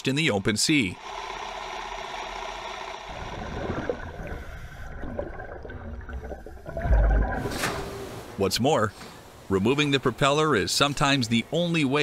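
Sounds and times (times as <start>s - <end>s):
underwater bubbles gurgling: 3.0s - 7.6s.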